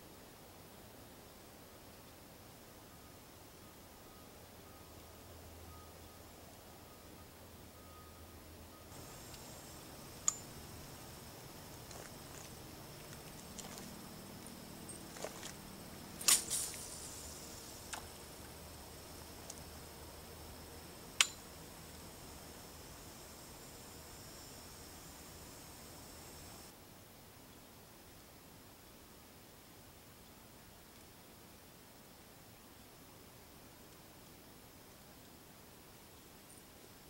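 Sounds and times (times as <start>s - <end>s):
faint hiss: 0.0s - 37.0s
sharp clicks: 8.9s - 11.1s, 21.2s - 21.4s.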